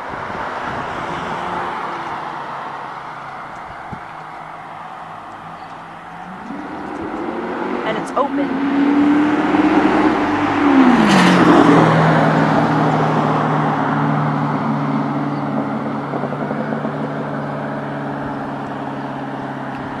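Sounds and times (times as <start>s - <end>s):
motor vehicle passing by: 0.0s - 20.0s.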